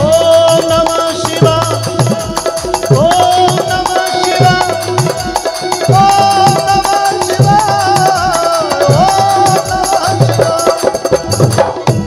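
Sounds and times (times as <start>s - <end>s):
drums and hand percussion: 0.0s - 12.0s.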